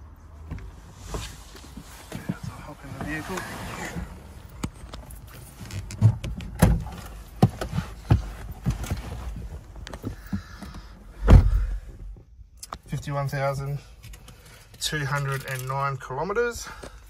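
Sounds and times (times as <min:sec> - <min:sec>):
person moving in car seat: 0:00.4 - 0:12.2
deep thumps: 0:11.1 - 0:12.2.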